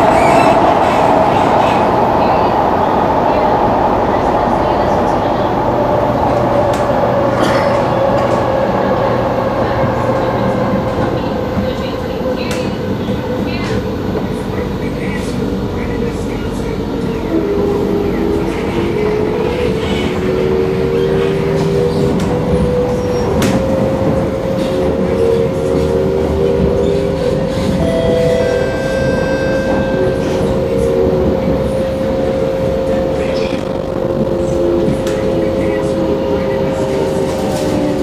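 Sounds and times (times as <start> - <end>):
train wheels rumbling on track: 0.0 - 38.0.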